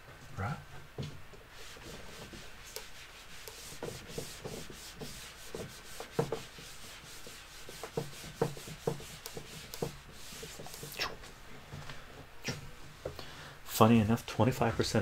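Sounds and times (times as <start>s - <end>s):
cloth rubbing on whiteboard: 1.5s - 11.4s.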